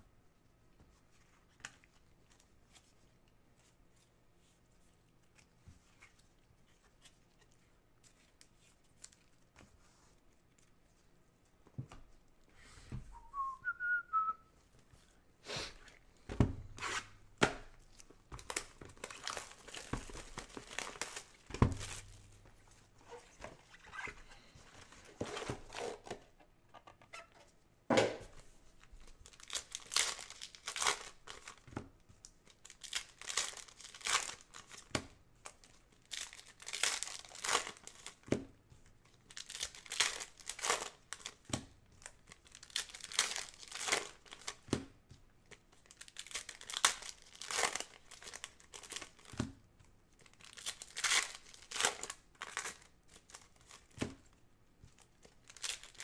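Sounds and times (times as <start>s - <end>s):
faint whistle: 13.1s - 14.5s
foil packs tearing and crinkling: 18.4s - 22.4s, 29.2s - 31.7s, 32.5s - 38.2s, 39.3s - 41.6s, 42.3s - 44.6s, 45.8s - 49.3s, 50.2s - 54.0s, 55.2s - 56.0s.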